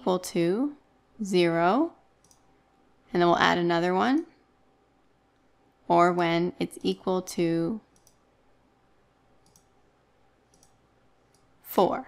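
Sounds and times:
computer mouse clicks: 2.2 - 2.5, 7.9 - 8.3, 9.4 - 9.8, 10.5 - 11.5.

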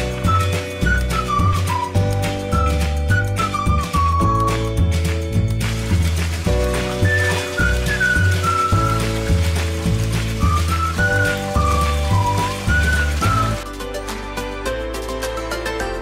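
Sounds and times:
instrumental music: 0.0 - 16.0.

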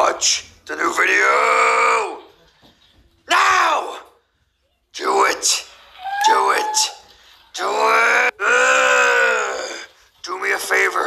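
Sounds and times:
groaning cries: 7.6 - 9.9.

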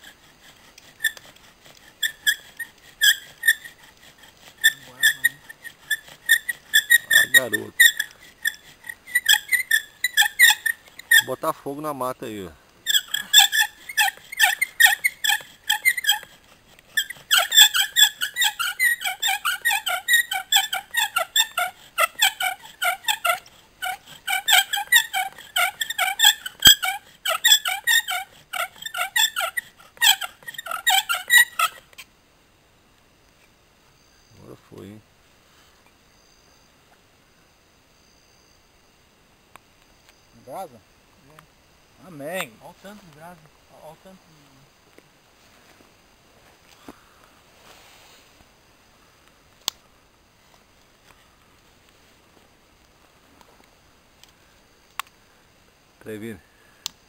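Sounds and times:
bow drill spindle squealing: 0.0 - 11.8, 12.8 - 32.1.

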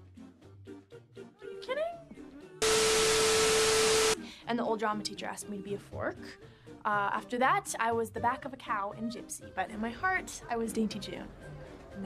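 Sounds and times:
steady beep tone: 2.6 - 4.2
tv static hiss: 2.6 - 4.2.

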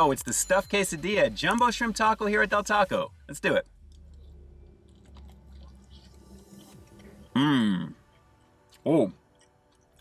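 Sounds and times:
biting and chewing crunchy food: 3.4 - 10.0.

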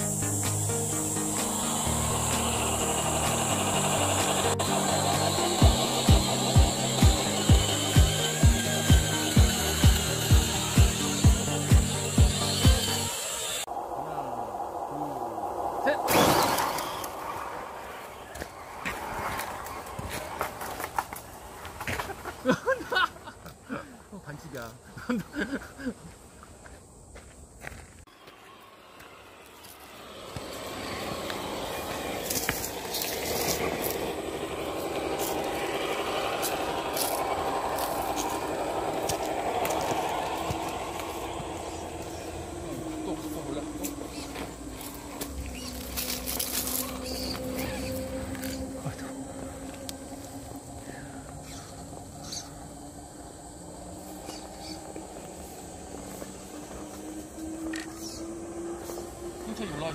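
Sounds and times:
electric motor whining: 0.0 - 13.7, 28.1 - 59.9.

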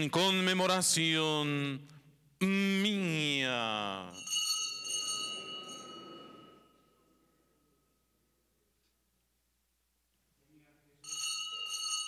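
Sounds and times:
altar bells ringing: 3.7 - 8.4, 11.0 - 12.0.

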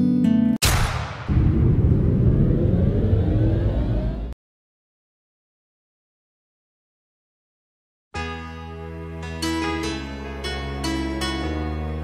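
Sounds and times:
loud low rumbling: 0.6 - 4.4.

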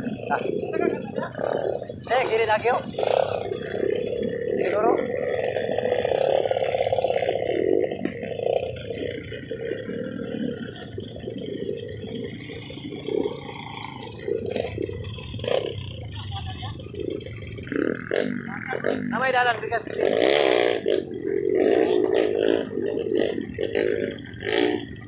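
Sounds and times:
motorcycle engines revving: 0.0 - 25.0
riders' voices: 0.0 - 25.0.

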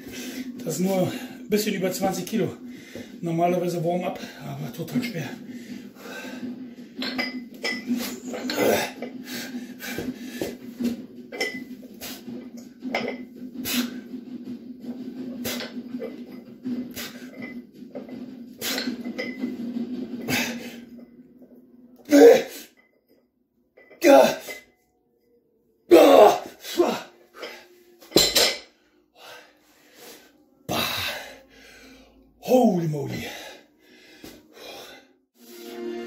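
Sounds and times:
dumbbell plates clinking and rattling: 6.9 - 9.1, 10.8 - 14.0, 15.5 - 21.2, 27.4 - 28.7.

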